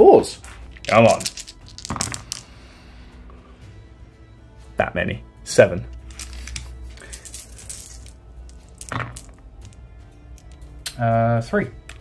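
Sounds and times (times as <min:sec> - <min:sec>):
background music: 0:00.0 - 0:12.0
dice clicking in hand: 0:00.7 - 0:02.5, 0:06.0 - 0:10.7
dice rolling into tray: 0:00.7 - 0:02.5, 0:06.1 - 0:09.8.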